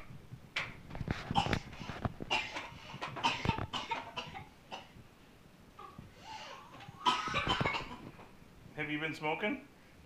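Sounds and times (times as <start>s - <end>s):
young child coughing: 2.3s - 5.0s, 7.0s - 8.0s.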